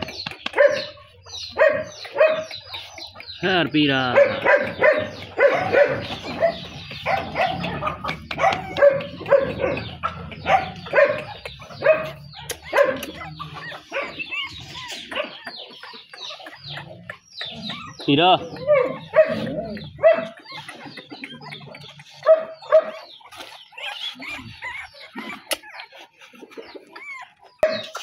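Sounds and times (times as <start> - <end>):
puppies yipping and whining: 0.0 - 3.4, 4.1 - 28.0.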